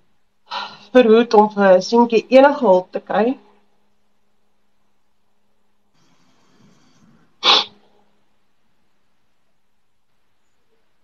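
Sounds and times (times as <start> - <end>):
woman sneezing: 7.4 - 7.8.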